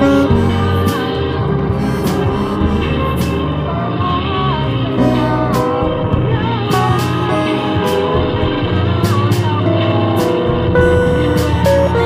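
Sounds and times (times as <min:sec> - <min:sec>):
backing music with a beat: 0:00.0 - 0:12.0
woman singing into a microphone: 0:00.0 - 0:12.0.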